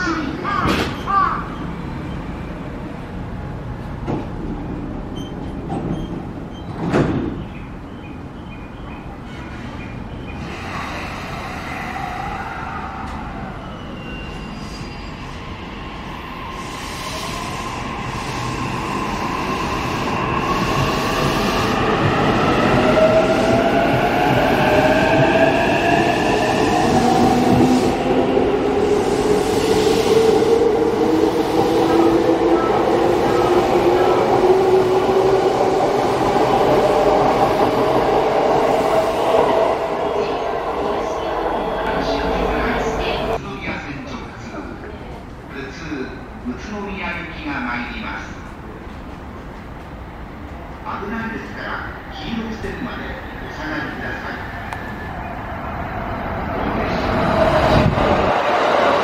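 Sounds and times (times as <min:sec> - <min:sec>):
wheels rumbling on rail: 0:54.7 - 0:59.0.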